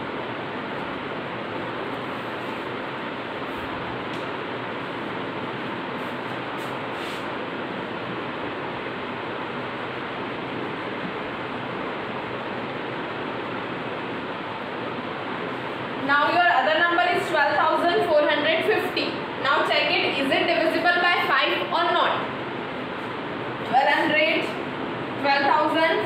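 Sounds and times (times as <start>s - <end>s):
steady room noise hiss: 0.0s - 26.0s.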